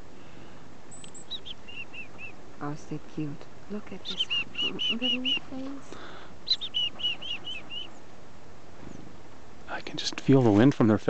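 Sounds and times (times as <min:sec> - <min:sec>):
chickadee call: 0:04.0 - 0:07.9.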